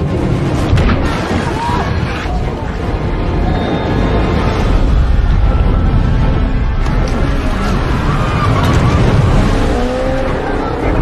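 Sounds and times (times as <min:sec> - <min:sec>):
loud water splashing: 0:07.4 - 0:10.7.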